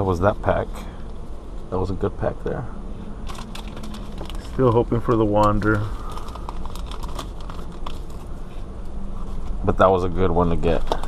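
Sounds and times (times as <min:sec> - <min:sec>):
steady low hum: 0:00.0 - 0:11.0
foil wrapper crinkling: 0:03.3 - 0:08.4.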